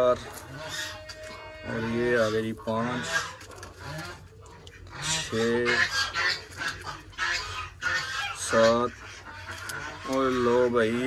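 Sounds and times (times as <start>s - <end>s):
poultry clucking: 0.0s - 11.0s.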